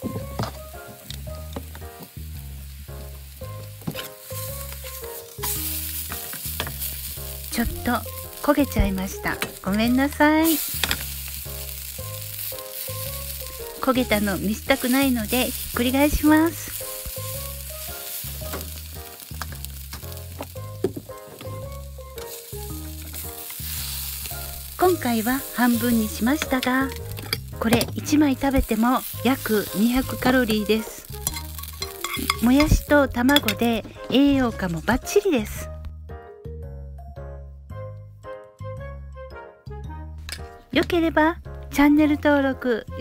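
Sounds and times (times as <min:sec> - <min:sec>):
background music with bass line: 0:00.0 - 0:43.0
pancake sizzling in frying pan: 0:00.8 - 0:32.8
spatula scraping a pan: 0:28.7 - 0:32.8.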